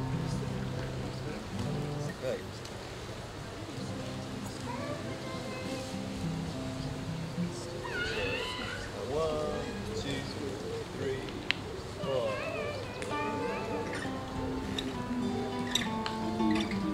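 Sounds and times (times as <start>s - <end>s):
acoustic guitars playing a jig: 0.0s - 2.4s, 3.8s - 10.4s, 12.0s - 16.9s
person's voice: 12.0s - 14.4s.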